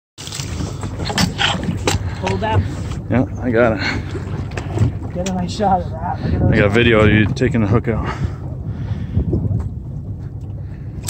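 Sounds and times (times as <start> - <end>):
shark thrashing water: 0.2 - 3.0
low rumble: 0.2 - 11.0.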